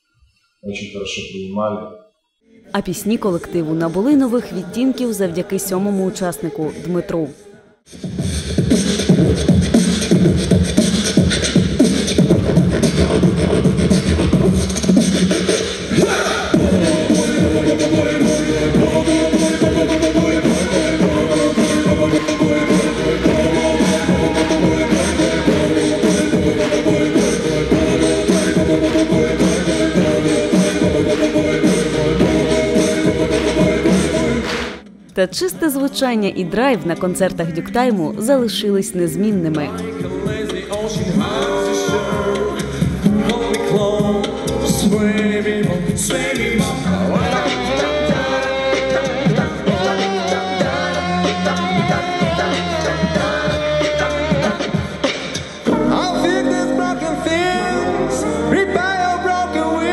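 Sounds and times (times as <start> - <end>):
beatboxing kick-drum sounds: 7.9 - 35.5, 36.5 - 55.8
male a cappella group singing: 8.8 - 34.8, 39.6 - 59.9.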